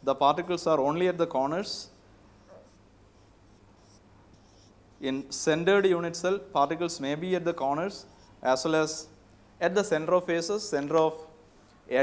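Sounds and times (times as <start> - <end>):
marker pen scratching on whiteboard: 2.4 - 5.2, 8.0 - 8.4.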